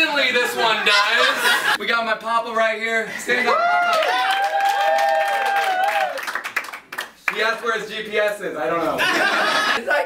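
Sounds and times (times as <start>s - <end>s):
audience clapping: 3.8s - 7.8s.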